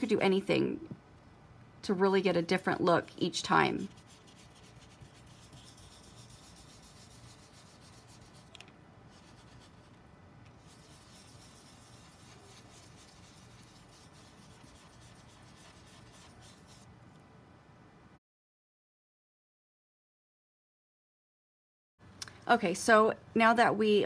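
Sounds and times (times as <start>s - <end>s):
brush brushing on paper: 3.8s - 10.0s, 10.6s - 16.9s.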